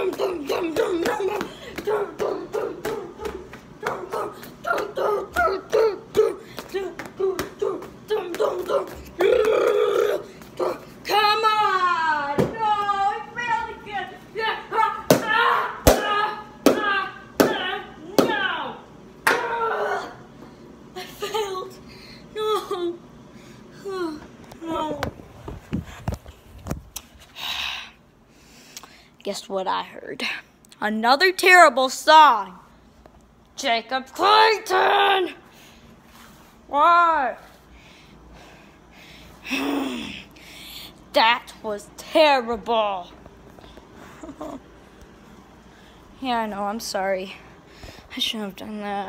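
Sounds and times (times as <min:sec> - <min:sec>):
boy shouting: 0:00.0 - 0:20.2.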